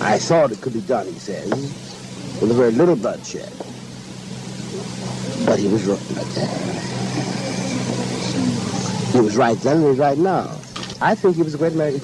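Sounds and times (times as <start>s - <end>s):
faint indistinct speech: 0.0s - 12.0s
steady low hum: 0.0s - 12.0s.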